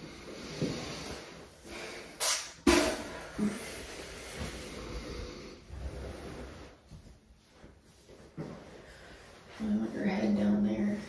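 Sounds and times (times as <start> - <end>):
towel rustling: 5.8 - 11.0.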